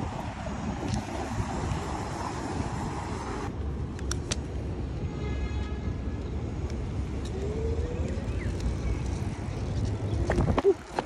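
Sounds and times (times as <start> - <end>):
street noise: 0.0 - 11.0
wind rumble on microphone: 0.0 - 11.0.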